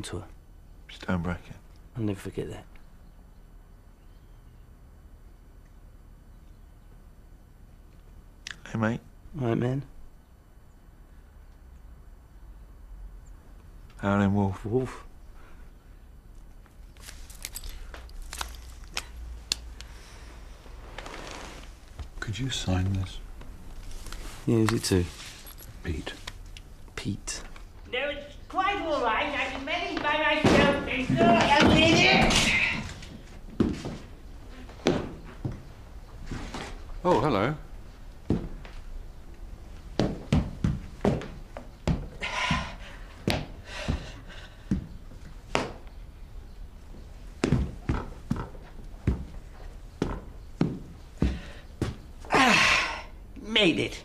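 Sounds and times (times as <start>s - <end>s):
steady low hum: 0.0s - 54.0s
thuds and knocks: 30.4s - 32.7s.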